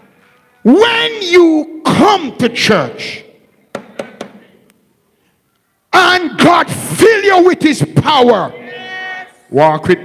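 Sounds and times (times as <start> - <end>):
man preaching through microphone: 0.6 - 3.4, 5.9 - 10.0
sharp knocks with echo: 3.7 - 4.4.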